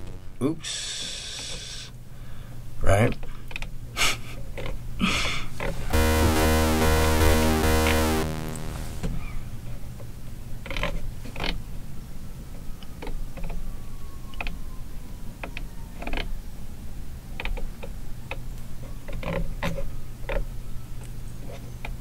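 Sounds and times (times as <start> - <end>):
steady low hum: 5.9 - 9.1
synthesizer tone: 5.9 - 9.1.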